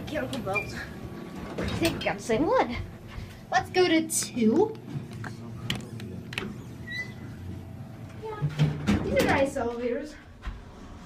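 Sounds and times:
elevator low hum: 0:00.0 - 0:11.0.

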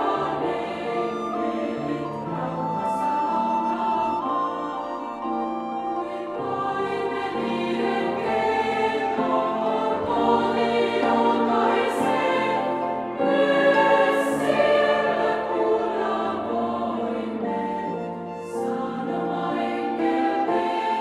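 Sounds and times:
girls' choir singing: 0:00.0 - 0:04.4, 0:06.0 - 0:21.0
instrumental accompaniment: 0:00.0 - 0:21.0.

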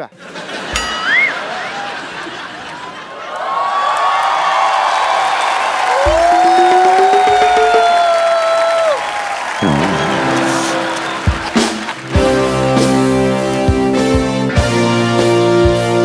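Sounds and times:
audience applause: 0:00.4 - 0:14.0
live band music: 0:09.6 - 0:16.0.

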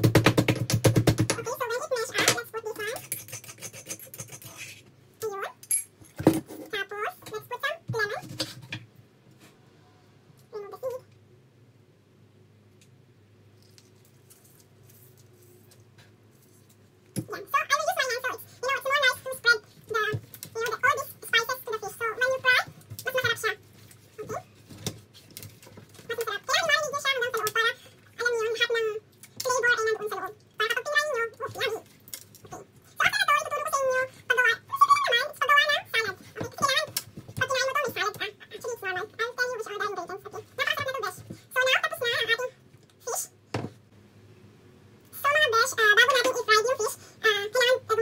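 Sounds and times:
high-pitched voice: 0:01.3 - 0:05.6, 0:10.5 - 0:11.1, 0:17.2 - 0:23.6, 0:24.2 - 0:24.5, 0:26.1 - 0:31.8, 0:32.5 - 0:43.4, 0:45.2 - 0:48.0.

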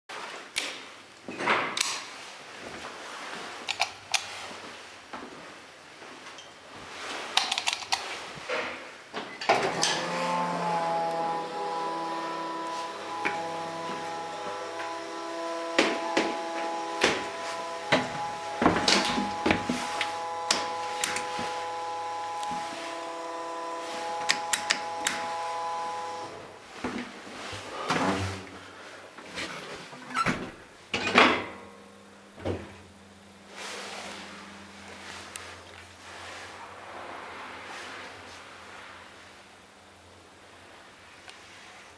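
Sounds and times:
sliding doors clattering: 0:09.4 - 0:26.2
hydraulic drive whining hum: 0:09.5 - 0:26.7, 0:30.0 - 0:36.7.

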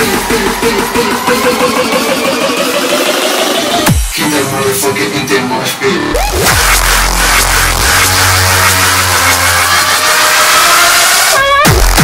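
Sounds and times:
low bass: 0:00.0 - 0:10.2
distorted synth noise rising tone: 0:04.6 - 0:11.3.

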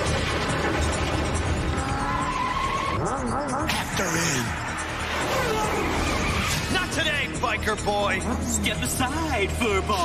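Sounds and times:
action background score: 0:00.0 - 0:10.0
wavering warbling cry: 0:01.6 - 0:06.6.

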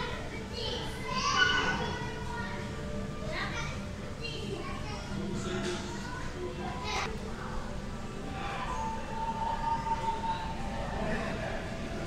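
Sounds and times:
children chattering: 0:00.0 - 0:07.7.

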